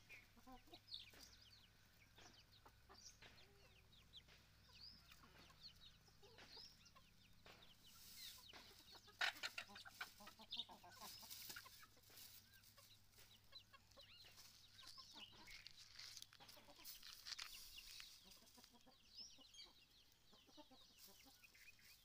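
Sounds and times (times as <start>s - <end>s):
chickens clucking: 0.0s - 22.0s
chicks peeping: 0.0s - 22.0s.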